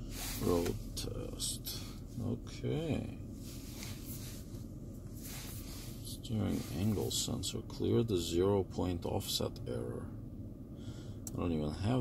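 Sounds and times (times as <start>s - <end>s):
low hum inside car cabin: 0.0s - 12.0s.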